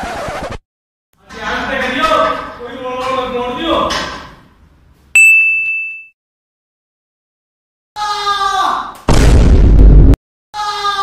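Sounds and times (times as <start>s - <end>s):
bright metallic ding: 5.2s - 6.2s.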